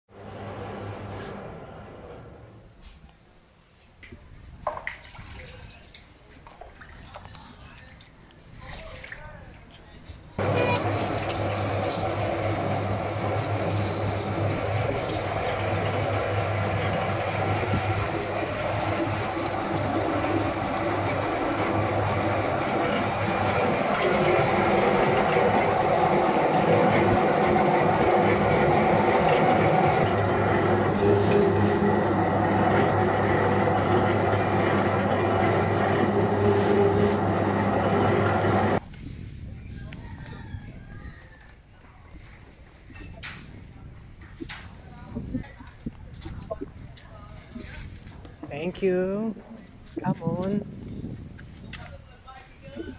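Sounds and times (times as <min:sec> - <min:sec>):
motor humming: 0:10.4 - 0:38.8
rollers crushing cane stalk: 0:10.4 - 0:38.8.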